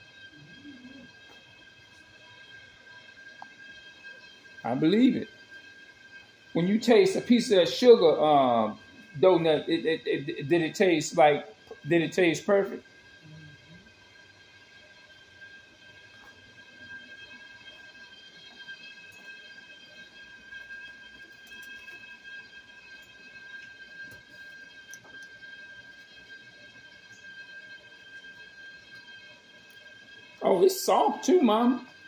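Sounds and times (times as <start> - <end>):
faint high-pitched whine: 0.0 - 32.0.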